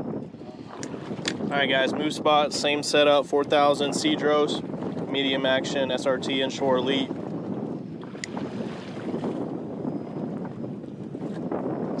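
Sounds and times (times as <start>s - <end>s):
water lapping against boat hull: 0.0s - 12.0s
wind buffeting microphone: 0.0s - 12.0s.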